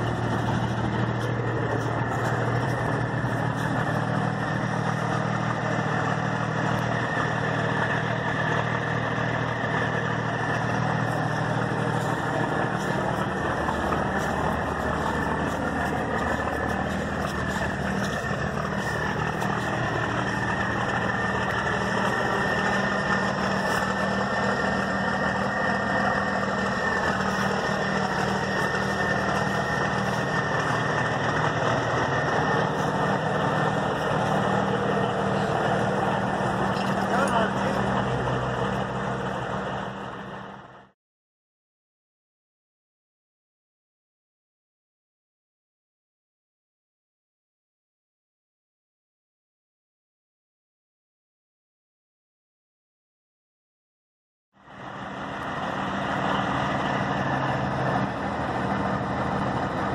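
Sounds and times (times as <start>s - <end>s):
diesel engine idling: 0.0s - 41.0s, 54.6s - 59.9s.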